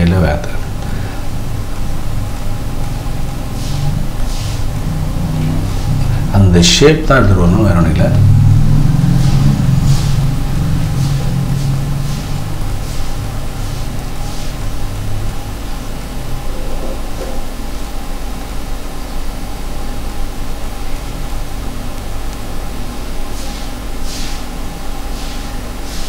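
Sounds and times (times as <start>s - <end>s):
low mechanical hum: 0.0s - 26.0s.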